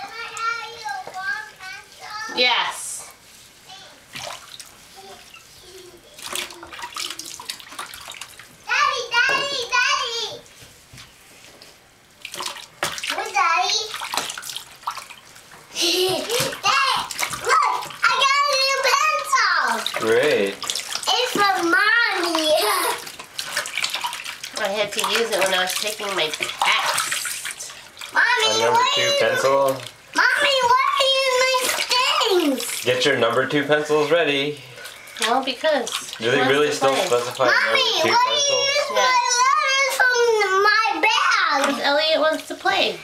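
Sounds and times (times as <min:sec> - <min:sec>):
child's high-pitched voice: 0:00.0 - 0:02.4, 0:03.7 - 0:04.0, 0:05.0 - 0:07.3, 0:08.7 - 0:10.4, 0:13.1 - 0:14.0, 0:15.9 - 0:19.9, 0:21.1 - 0:23.0, 0:28.1 - 0:29.5, 0:30.2 - 0:32.7, 0:37.4 - 0:42.2
bath water splashing and dripping: 0:00.0 - 0:43.0.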